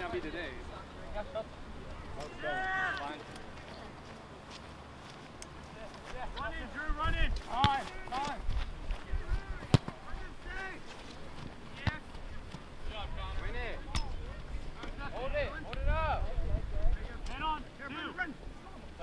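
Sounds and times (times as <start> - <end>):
players shouting: 2.2 - 3.3, 9.0 - 10.9
ball being kicked: 9.6 - 10.1.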